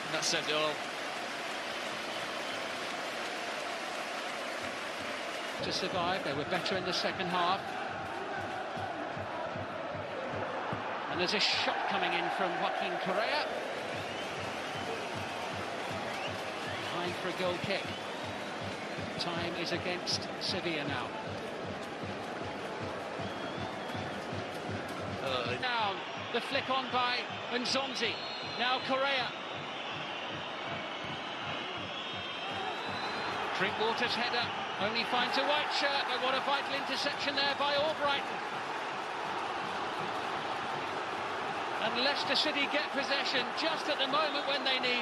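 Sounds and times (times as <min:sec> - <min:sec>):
stadium crowd roar: 0:00.0 - 0:45.0.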